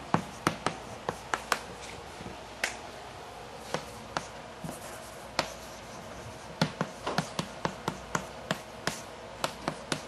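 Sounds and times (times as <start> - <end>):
chalk tapping on a blackboard: 0.1 - 1.8, 3.6 - 10.0.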